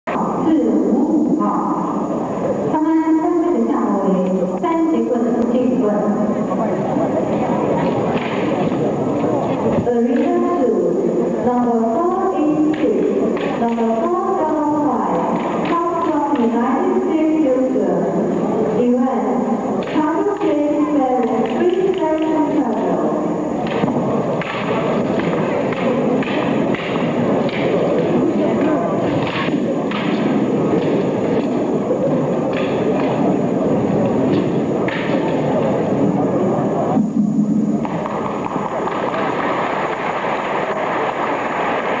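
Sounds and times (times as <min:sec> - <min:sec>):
crowd noise in arena: 0:00.0 - 0:42.0
wooden staffs clacking: 0:23.6 - 0:28.1.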